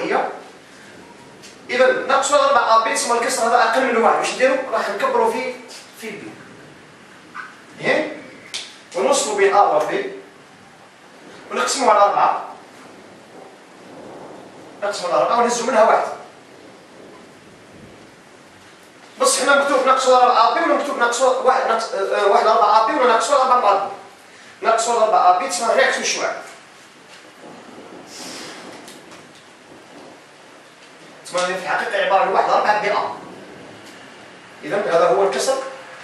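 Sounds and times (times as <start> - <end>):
room noise hiss: 0.0 - 36.0
man speaking: 1.7 - 6.4, 11.5 - 12.6, 19.2 - 26.6, 31.2 - 33.2, 34.6 - 35.8.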